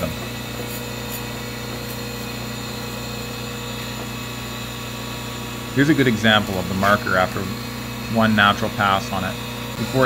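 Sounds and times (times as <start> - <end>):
surface grinder humming: 0.0 - 10.0.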